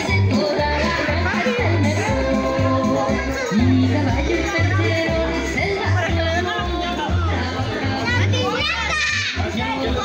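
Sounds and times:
children shouting and playing: 0:00.0 - 0:10.0
loud party music with bass: 0:00.0 - 0:10.0.

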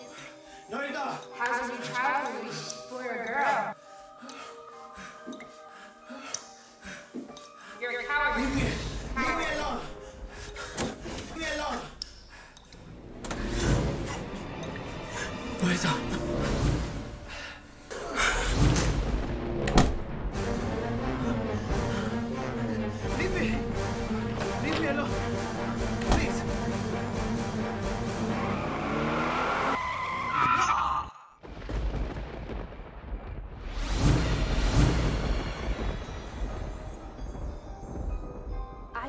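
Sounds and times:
dramatic film score drone: 0:10.0 - 0:29.8
car tyres squealing: 0:28.4 - 0:30.9.

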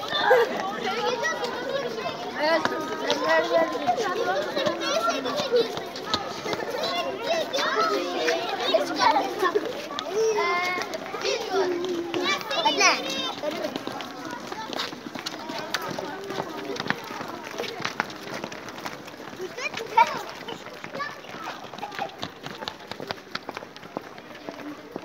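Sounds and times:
children shouting: 0:00.0 - 0:23.2
children talking and calling out: 0:00.0 - 0:25.0.

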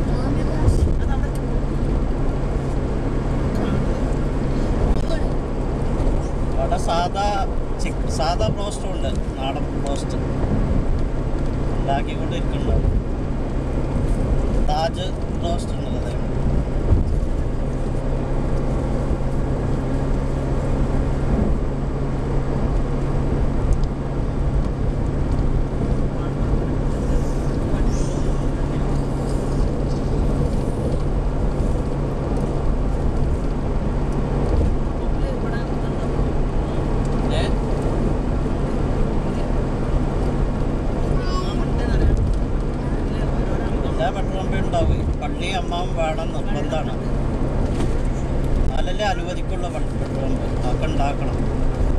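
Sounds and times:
car engine hum: 0:00.0 - 0:51.9
tyre and road noise: 0:00.0 - 0:51.9.

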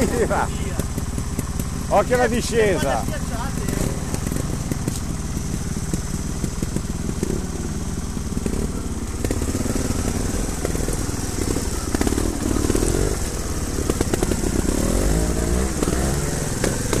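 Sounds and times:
motorcycle engine revving: 0:00.0 - 0:17.0.

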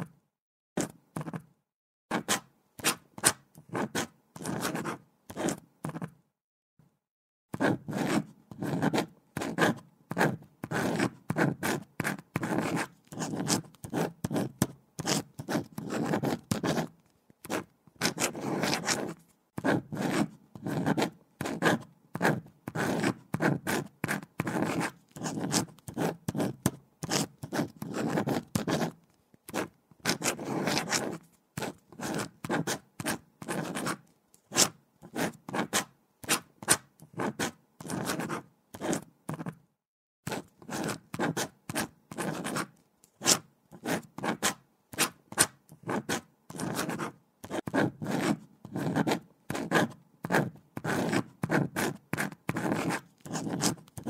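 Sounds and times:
pen scratching on paper: 0:00.8 - 0:01.5, 0:02.1 - 0:06.2, 0:07.5 - 0:39.6, 0:40.3 - 0:54.0.

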